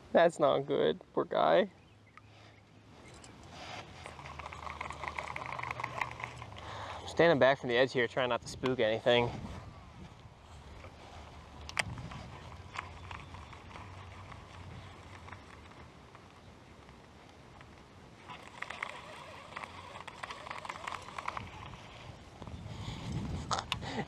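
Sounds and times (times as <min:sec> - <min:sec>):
fishing reel cranking: 0:03.5 - 0:07.8, 0:11.6 - 0:15.8, 0:18.2 - 0:22.1
sharp clicks: 0:04.0 - 0:07.0, 0:11.6 - 0:21.8
wind rumble on microphone: 0:08.2 - 0:15.4, 0:21.2 - 0:24.0.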